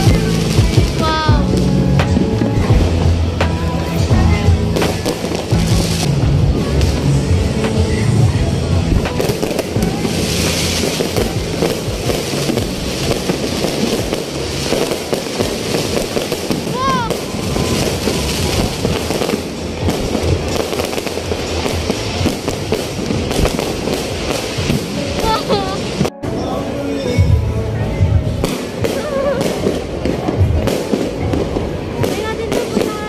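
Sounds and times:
fireworks bangs and crackling: 0.0s - 33.0s.

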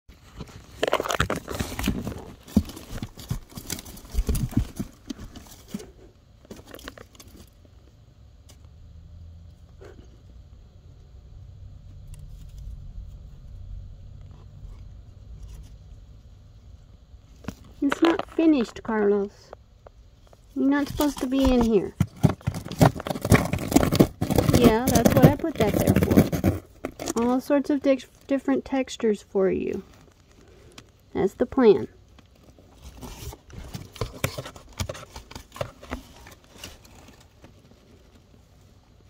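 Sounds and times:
paper and cardboard rustling: 0.1s - 7.6s, 17.3s - 19.3s, 20.3s - 28.1s, 32.3s - 38.8s.

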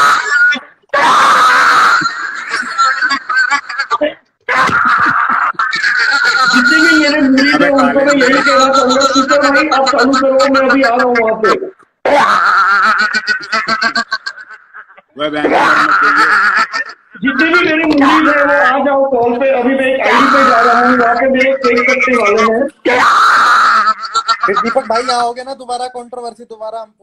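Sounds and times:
person screaming into microphone: 0.0s - 2.1s, 15.4s - 16.3s, 20.0s - 21.2s, 22.8s - 24.0s.

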